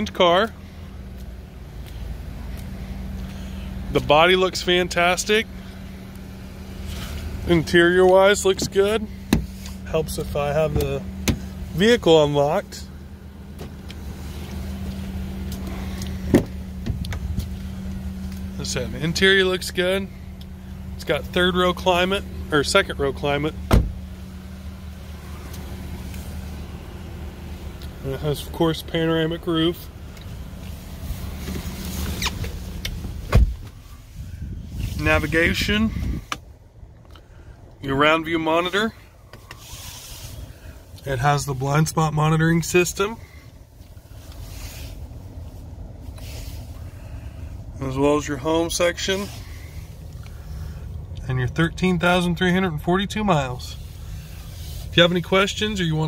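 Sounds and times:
steady low hum: 0.0s - 56.0s
car door latch clack: 23.7s - 24.0s.

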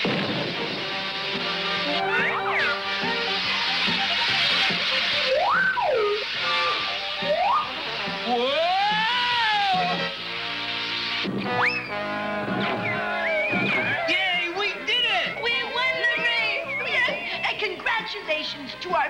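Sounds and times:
background music: 0.0s - 19.0s
whistling pitch glides: 2.0s - 10.0s, 11.5s - 17.6s.

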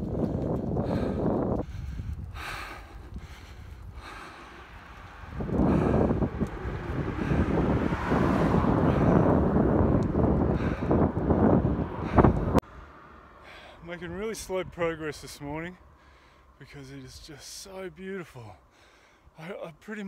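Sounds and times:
wind buffeting microphone: 0.0s - 12.8s.

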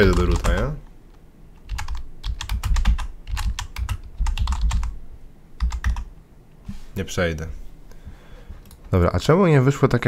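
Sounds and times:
computer keyboard typing: 0.0s - 0.8s, 1.6s - 5.0s, 5.6s - 6.1s.

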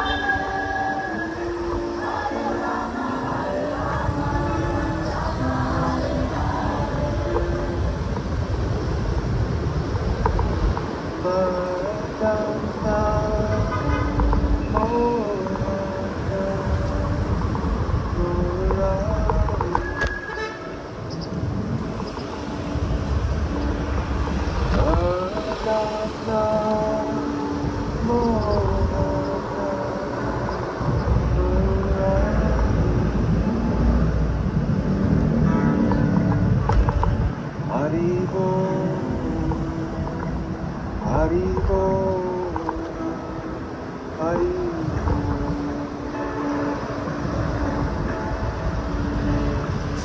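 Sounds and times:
person singing slowly: 0.0s - 8.4s, 11.1s - 20.2s, 24.7s - 34.3s, 37.6s - 50.0s
road rumble from bicycle: 0.0s - 50.0s
wind noise: 0.0s - 50.0s.

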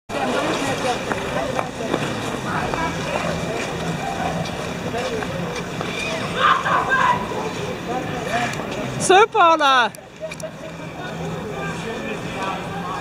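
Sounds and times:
skate blades scraping on ice: 0.2s - 6.4s.

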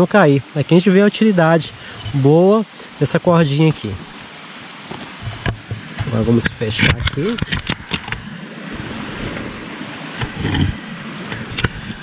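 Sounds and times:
stream rushing: 0.0s - 12.0s.

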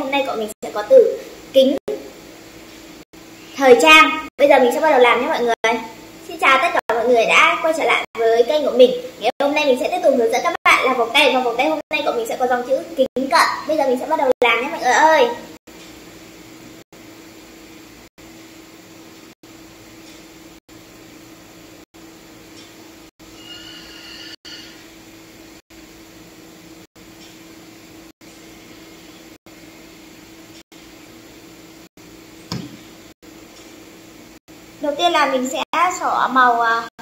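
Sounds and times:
knock: 32.5s - 32.8s.

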